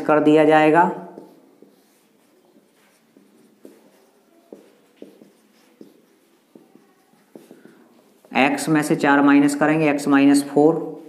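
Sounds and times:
marker writing on whiteboard: 0.0s - 9.0s.

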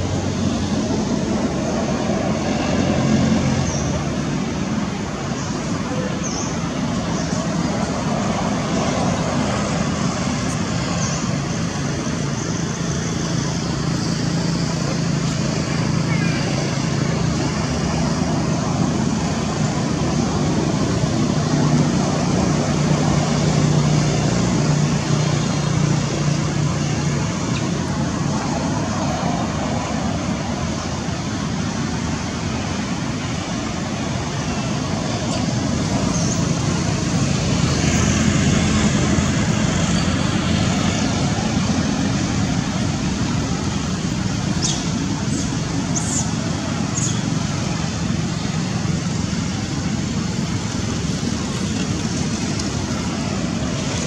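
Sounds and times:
rumble and hiss of traffic: 0.0s - 54.0s.

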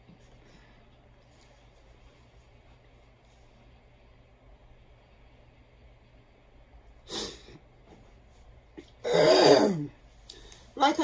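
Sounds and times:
woman clearing her throat: 9.0s - 9.9s.

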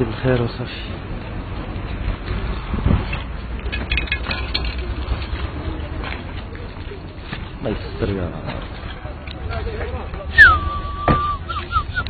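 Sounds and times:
wind rumbling on microphone: 0.9s - 7.6s.

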